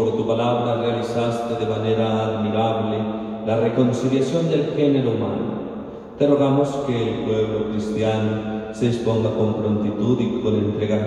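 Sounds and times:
man chanting a prayer: 0:00.0 - 0:05.5, 0:06.2 - 0:11.0.

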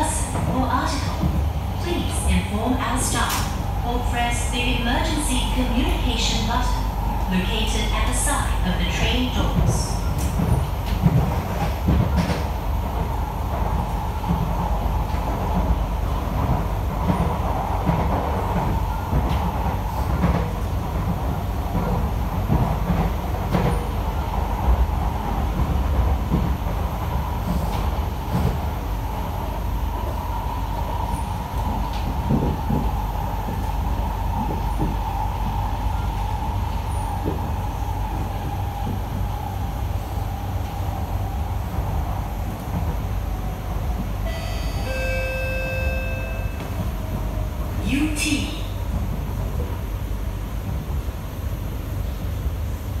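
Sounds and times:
wheels rumbling on rail: 0:00.0 - 0:53.0.

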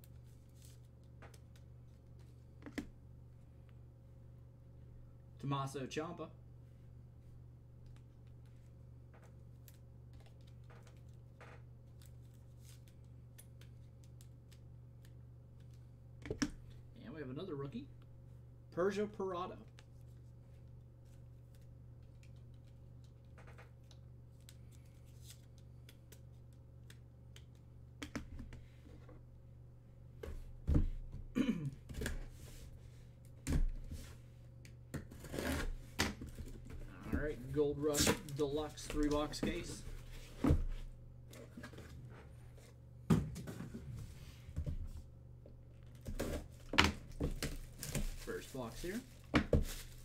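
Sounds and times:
cardboard and plastic wrap rustling: 0:45.9 - 0:50.0.

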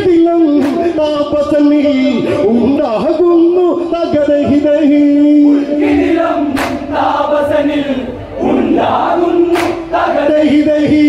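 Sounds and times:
sharp hand clap: 0:06.6 - 0:06.8, 0:09.5 - 0:09.8.

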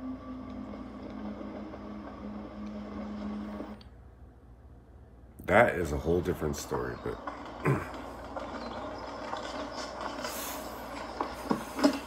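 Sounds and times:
film soundtrack through television: 0:00.0 - 0:12.0.

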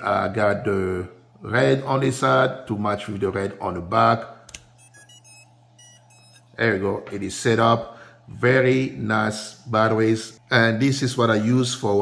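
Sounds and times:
short electronic beeps: 0:04.8 - 0:06.6.

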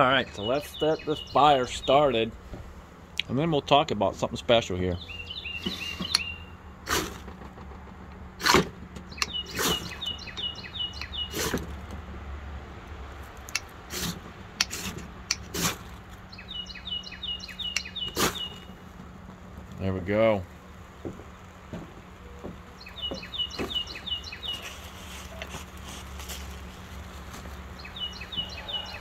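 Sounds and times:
bird chirping: 0:00.0 - 0:02.4, 0:04.8 - 0:06.8, 0:09.0 - 0:11.8, 0:16.2 - 0:19.0, 0:22.2 - 0:29.0
ferro rod scraping: 0:05.6 - 0:12.0, 0:13.2 - 0:16.2, 0:23.6 - 0:29.0.

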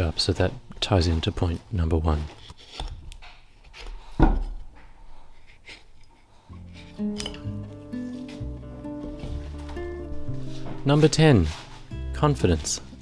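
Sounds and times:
background music: 0:06.5 - 0:13.0.

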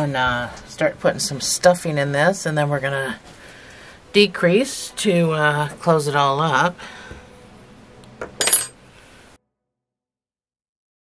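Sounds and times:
metal object clinking: 0:08.3 - 0:08.8.

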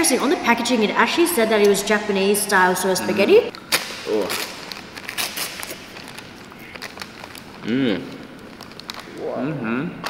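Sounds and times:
paper wrapper crinkling: 0:03.5 - 0:09.2.

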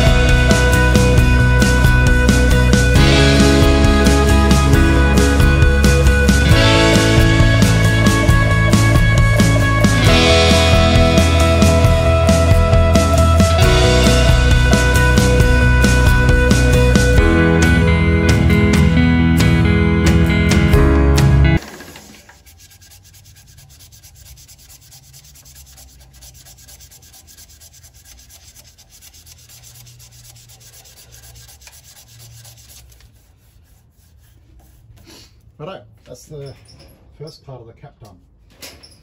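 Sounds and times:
guitar music: 0:00.0 - 0:21.6
sandpaper rubbing on spinning wood: 0:21.9 - 0:35.0.

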